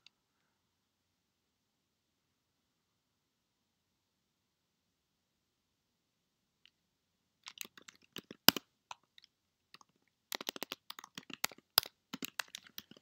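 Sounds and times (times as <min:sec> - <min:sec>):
typing on a computer keyboard: 0:07.4 - 0:09.2, 0:09.8 - 0:13.0.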